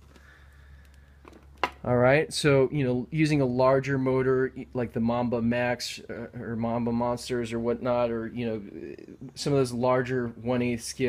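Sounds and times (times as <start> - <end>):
faint steady hum: 0.0 - 11.0
man talking: 1.8 - 11.0.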